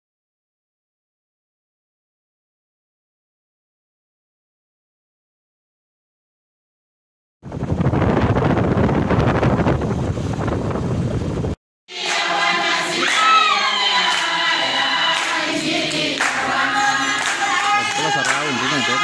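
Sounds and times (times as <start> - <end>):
rough loud noise: 7.5 - 19.0
group of people singing: 11.9 - 19.0
hand clapping: 12.0 - 13.4, 14.0 - 14.4, 15.1 - 19.0.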